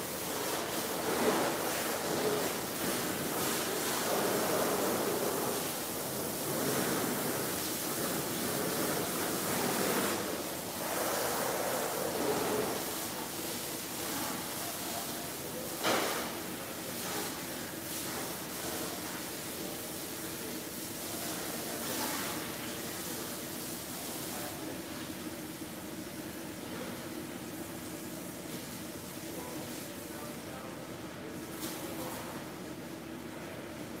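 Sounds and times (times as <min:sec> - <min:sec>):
pressure washer spraying water: 0:00.0 - 0:25.1.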